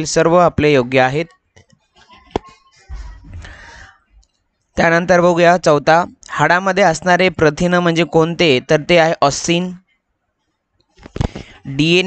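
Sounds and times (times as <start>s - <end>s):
person speaking: 2.1s - 3.9s, 11.2s - 12.0s.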